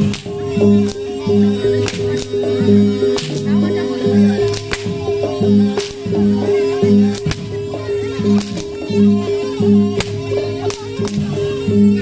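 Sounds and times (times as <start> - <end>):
whip cracks: 0.0 - 1.1, 1.8 - 2.5, 3.1 - 3.5, 4.4 - 5.0, 5.8 - 6.2, 7.1 - 7.6, 8.2 - 8.8, 10.0 - 11.4
loud gamelan music: 0.0 - 12.0.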